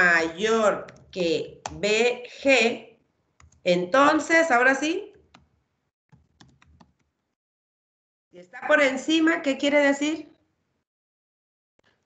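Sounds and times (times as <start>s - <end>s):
faint keyboard typing: 0.8s - 1.9s, 3.3s - 3.7s, 5.1s - 7.3s.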